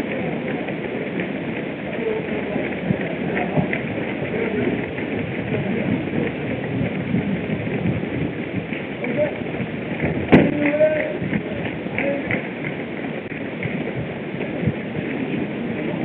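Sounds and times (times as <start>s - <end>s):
murmur of voices: 0.0s - 6.9s
crowd footsteps on pavement: 0.0s - 16.0s.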